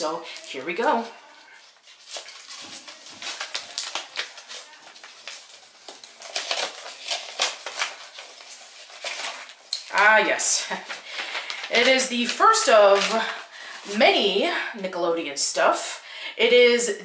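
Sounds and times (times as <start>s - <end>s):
package rustling and tearing: 0.0s - 14.0s.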